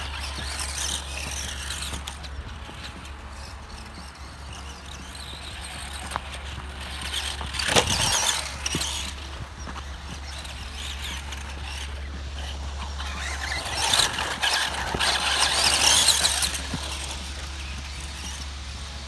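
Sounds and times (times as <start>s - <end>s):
drivetrain whir: 0.0s - 19.0s
tyres scrabbling through dirt: 0.0s - 19.0s.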